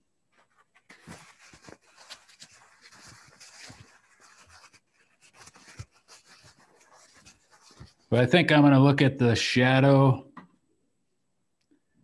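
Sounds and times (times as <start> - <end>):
tissue rubbing on paper: 0.3 - 8.1.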